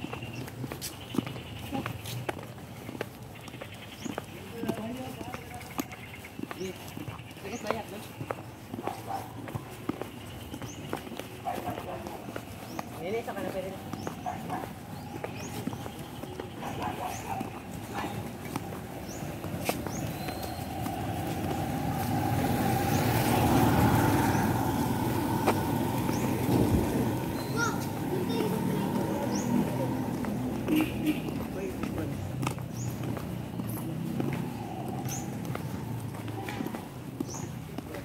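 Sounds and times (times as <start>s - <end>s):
indistinct background voices: 8.8s - 38.0s.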